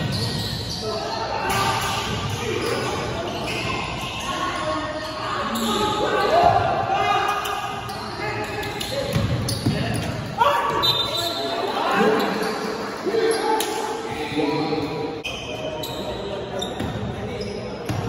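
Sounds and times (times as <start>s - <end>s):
basketball bouncing on court: 9.1s - 10.2s
people shouting in hall: 10.4s - 12.2s.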